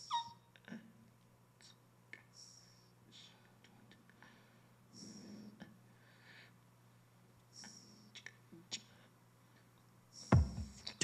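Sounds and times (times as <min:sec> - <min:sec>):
breathing sounds: 0:04.1 - 0:06.6.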